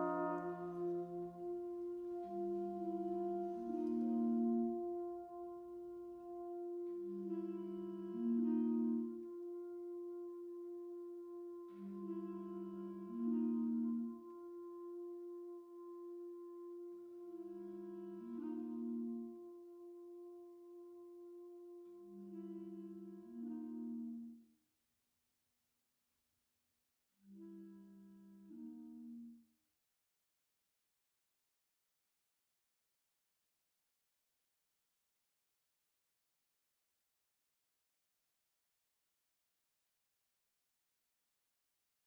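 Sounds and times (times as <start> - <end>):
wind band playing slowly: 0.0 - 24.3.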